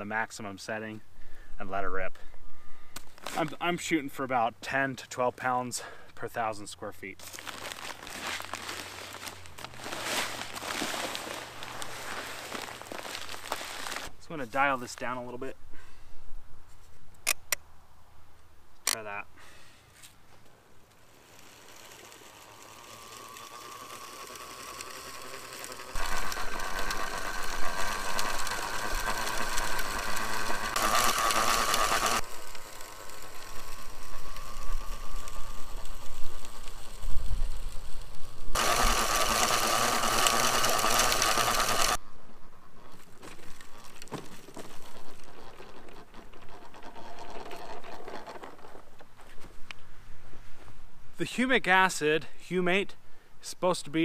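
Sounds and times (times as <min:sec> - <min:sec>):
push spreader mechanical whir: 0:07.2 - 0:14.1, 0:20.9 - 0:42.0.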